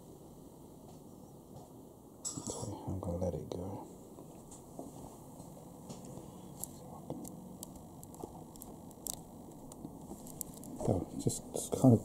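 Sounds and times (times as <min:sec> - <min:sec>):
low steady hiss: 0:00.0 - 0:12.0
handling clicks and rustles: 0:05.9 - 0:11.0.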